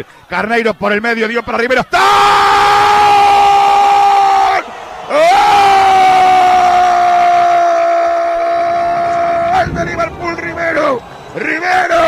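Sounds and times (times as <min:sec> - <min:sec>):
person breathing: 0:00.0 - 0:00.3
commentator shouting: 0:01.5 - 0:12.0.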